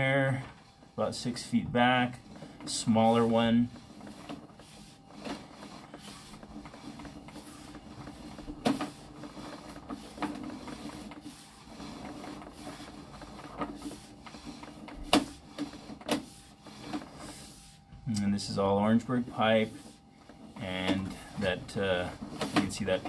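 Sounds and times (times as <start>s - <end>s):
mechanical whirring of cable reel: 0.0s - 23.0s.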